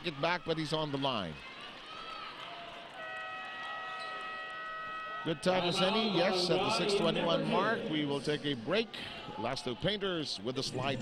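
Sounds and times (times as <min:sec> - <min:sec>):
arena horn blast: 0:03.0 - 0:07.8.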